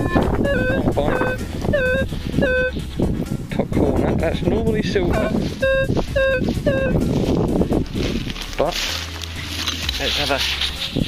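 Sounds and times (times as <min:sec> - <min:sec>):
metal detector beeps: 0:00.0 - 0:02.8, 0:05.6 - 0:07.0
coil scraping through stubble: 0:07.0 - 0:11.0.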